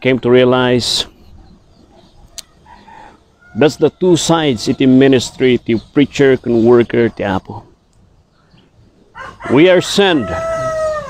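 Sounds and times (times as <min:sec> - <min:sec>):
rooster crowing: 0:09.1 - 0:11.0.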